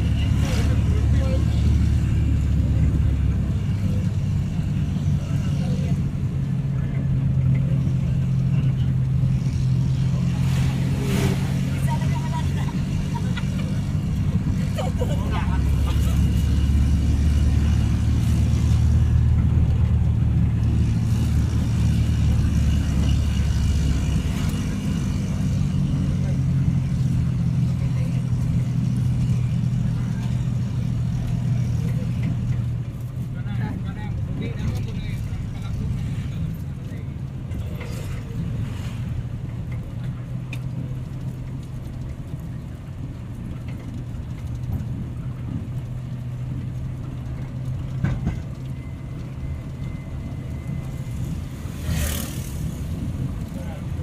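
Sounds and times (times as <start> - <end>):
road noise: 0.0 - 54.0
vehicle engine drone: 0.0 - 54.0.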